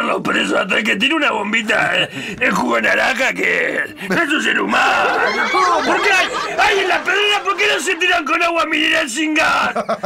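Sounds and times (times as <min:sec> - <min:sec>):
people arguing: 0:02.7 - 0:09.8.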